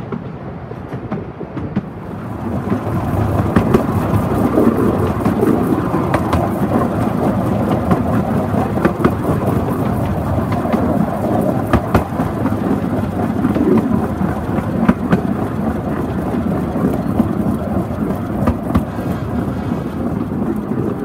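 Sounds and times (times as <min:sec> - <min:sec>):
steel wheels rumbling on rail: 0:00.0 - 0:21.0.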